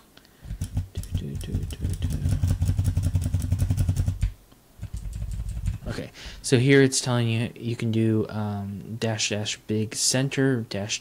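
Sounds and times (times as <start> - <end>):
rapid keyboard key presses: 0.4 - 6.0.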